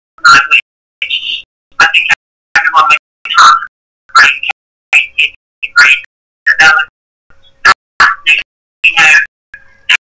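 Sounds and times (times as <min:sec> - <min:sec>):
choppy voice over a call: 0:00.2 - 0:06.9, 0:07.6 - 0:09.3.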